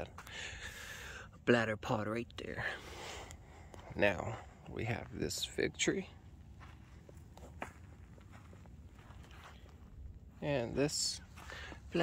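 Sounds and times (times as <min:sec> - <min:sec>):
low steady rumble: 0:00.0 - 0:12.0
footsteps on dry soil: 0:02.6 - 0:12.0.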